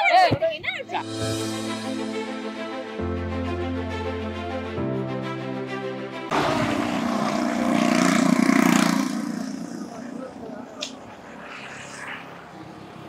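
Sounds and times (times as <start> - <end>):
quiet street sound: 6.3 - 13.0
vehicle passing close by: 6.3 - 13.0.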